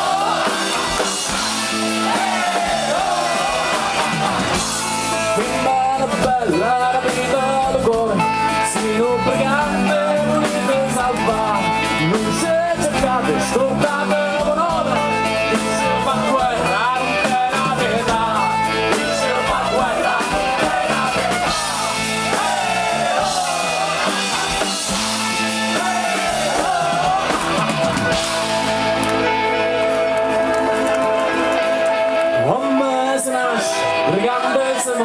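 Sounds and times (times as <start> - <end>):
man singing loudly: 0.0 - 27.7, 31.0 - 35.0
electric guitar: 0.0 - 35.0
folk-rock band playing: 0.0 - 35.0.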